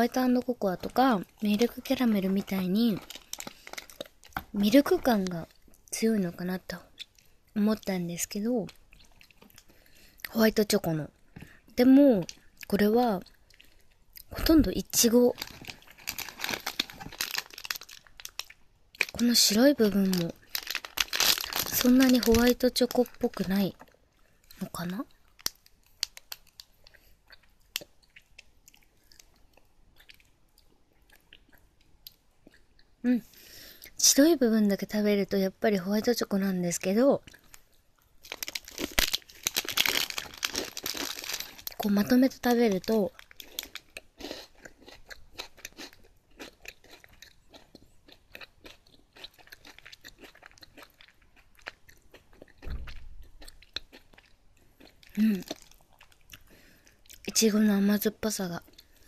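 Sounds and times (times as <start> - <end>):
crunching biscuit snack: 1.6 - 4.6, 15.3 - 23.5, 38.2 - 41.9, 42.8 - 57.2.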